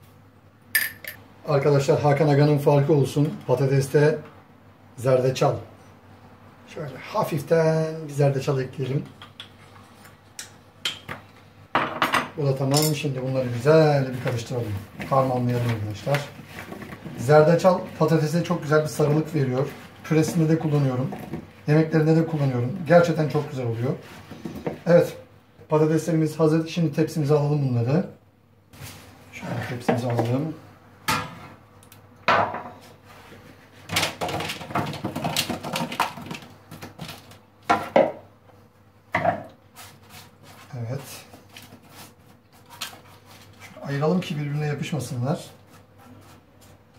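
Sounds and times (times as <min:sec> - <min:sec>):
kitchen clatter: 0:33.9 - 0:38.2.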